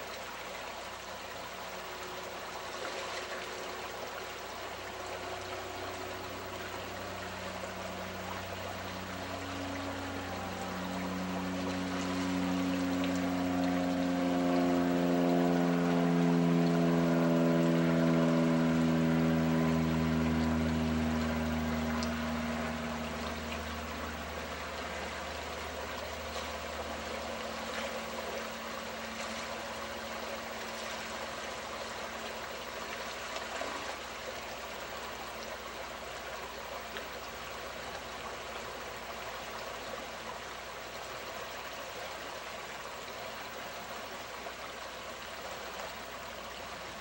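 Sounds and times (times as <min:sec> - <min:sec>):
low pitched hum: 0:00.0 - 0:47.0
river water splashing: 0:00.0 - 0:47.0.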